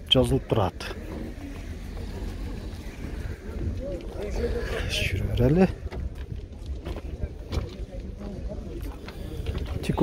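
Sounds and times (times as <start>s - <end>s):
faint people talking: 0.0s - 10.0s
wind rumble on microphone: 0.4s - 10.0s.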